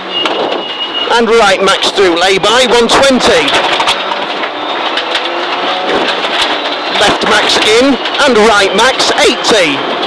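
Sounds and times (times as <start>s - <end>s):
car engine running: 0.0s - 10.0s
tyre and road noise: 0.0s - 10.0s.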